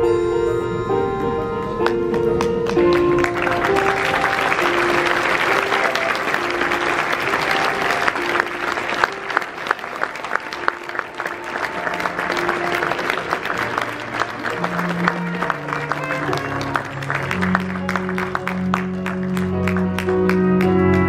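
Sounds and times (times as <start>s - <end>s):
sustained closing music: 0.0s - 21.0s
audience applauding: 1.8s - 21.0s.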